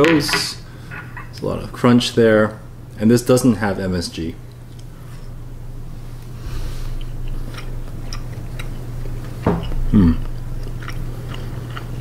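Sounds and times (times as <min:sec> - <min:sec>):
person chewing crunchy food: 0:06.1 - 0:12.0
person humming hmm: 0:09.8 - 0:10.4.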